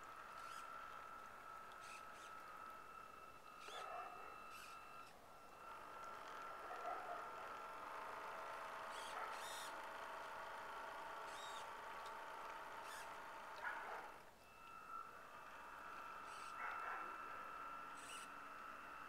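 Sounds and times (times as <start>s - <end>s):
model boat motor whining: 0.0s - 19.0s.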